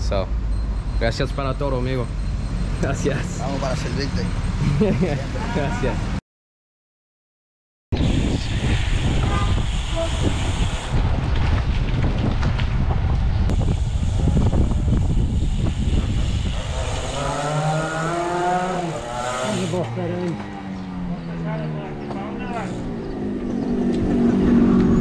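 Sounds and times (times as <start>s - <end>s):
road noise: 0.0s - 6.2s, 8.0s - 25.0s
wind on camera microphone: 7.9s - 18.4s.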